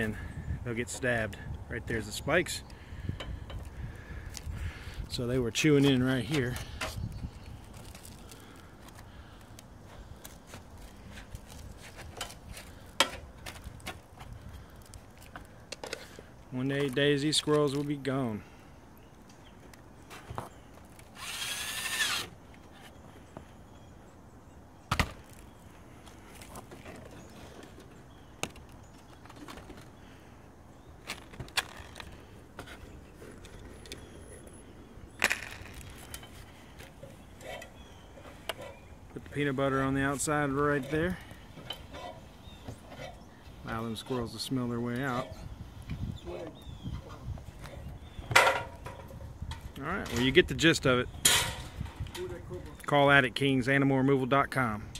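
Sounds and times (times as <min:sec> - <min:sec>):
cordless drill whining: 0:21.2 - 0:22.3.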